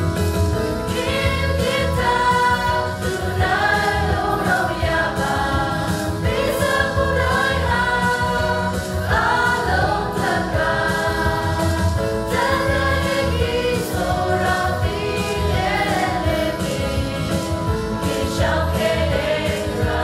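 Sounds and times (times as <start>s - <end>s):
mixed choir singing a hymn: 0.7s - 20.0s.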